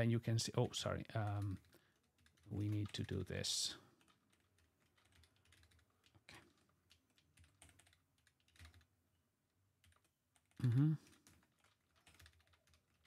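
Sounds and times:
typing on computer keyboard: 1.2s - 8.9s, 9.8s - 13.0s.

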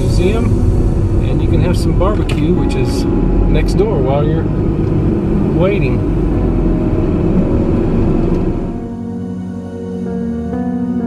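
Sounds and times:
car road and engine noise: 0.0s - 11.0s
soft ambient music: 0.0s - 11.0s.

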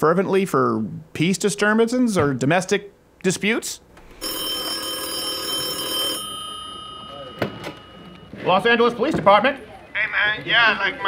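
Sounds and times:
telephone bell ringing: 4.2s - 8.4s.

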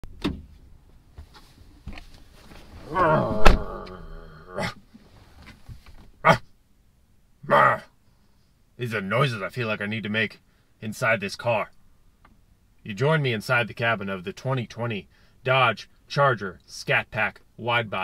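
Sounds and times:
man groaning: 2.8s - 4.8s, 7.4s - 7.9s
short vocal grunt: 2.8s - 4.8s, 6.2s - 6.5s, 7.4s - 7.9s
car door shutting: 3.2s - 4.0s.

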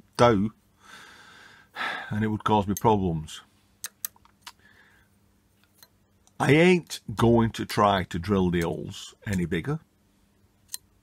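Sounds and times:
faint metal ticks: 2.7s - 3.0s.

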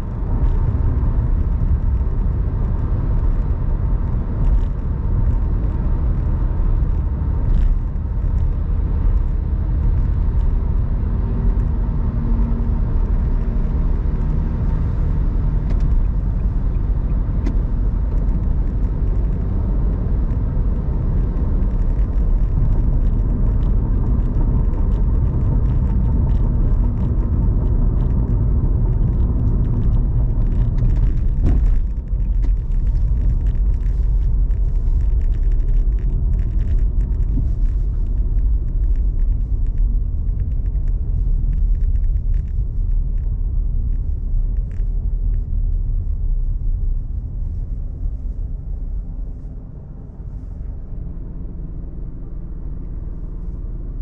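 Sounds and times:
car cabin road rumble: 0.0s - 54.0s.

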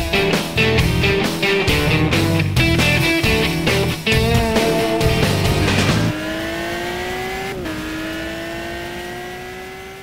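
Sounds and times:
car engine accelerating: 0.7s - 10.0s.

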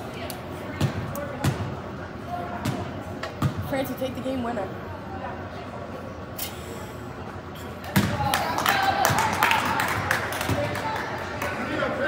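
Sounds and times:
background chatter: 0.0s - 12.0s.

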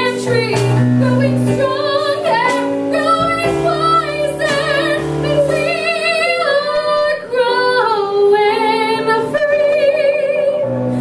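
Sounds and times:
piano accompaniment: 0.0s - 11.0s
woman singing with vibrato: 0.0s - 11.0s.

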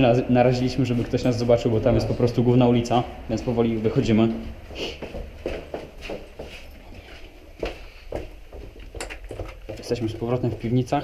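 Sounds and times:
footsteps going down stairs: 3.3s - 11.0s.

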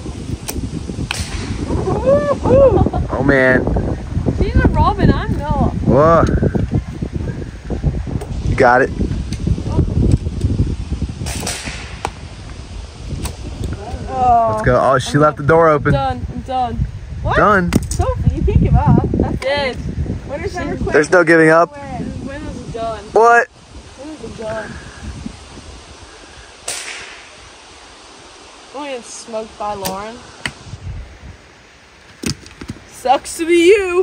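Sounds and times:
wind on microphone: 0.0s - 34.0s
bow string snap: 0.4s - 1.6s, 26.7s - 27.3s, 29.8s - 30.6s
arrow swishing from bow: 0.4s - 1.9s, 11.2s - 12.2s, 26.6s - 27.3s.

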